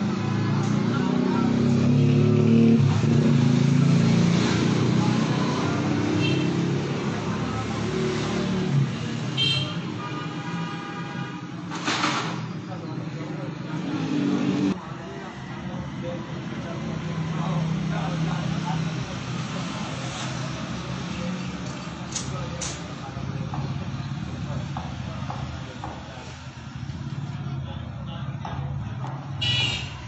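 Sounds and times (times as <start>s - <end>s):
traffic engine drone: 0.0s - 30.0s.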